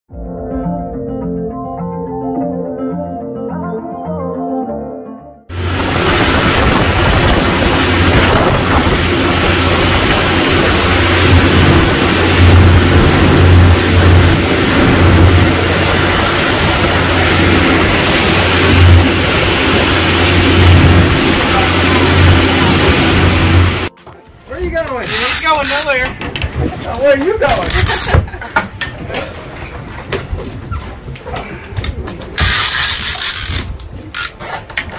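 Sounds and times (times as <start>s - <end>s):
boat engine running: 5.5s - 23.9s
wake and spray rushing: 5.5s - 23.9s
wind buffeting microphone: 5.5s - 23.9s.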